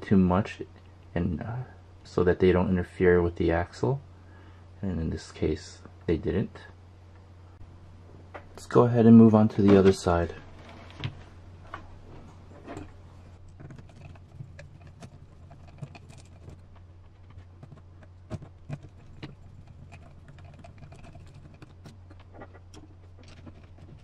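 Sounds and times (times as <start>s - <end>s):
steady low hum: 0.0s - 24.0s.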